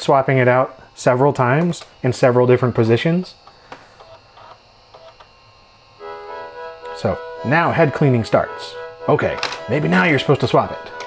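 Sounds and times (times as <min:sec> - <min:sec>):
low hum: 0:06.0 - 0:11.0
floppy drive seeking: 0:06.3 - 0:11.0.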